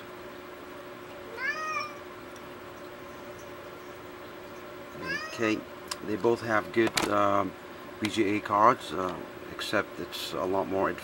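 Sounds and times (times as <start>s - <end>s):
faint steady hum: 0.0s - 11.0s
high-pitched animal call: 1.2s - 2.1s, 5.0s - 5.6s.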